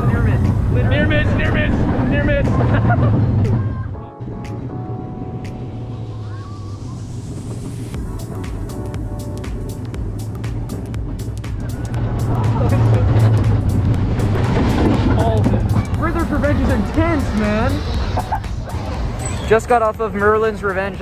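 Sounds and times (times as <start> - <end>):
rapid track clatter: 0.0 - 3.7, 7.9 - 21.0
roller coaster wheels rumbling: 0.0 - 21.0.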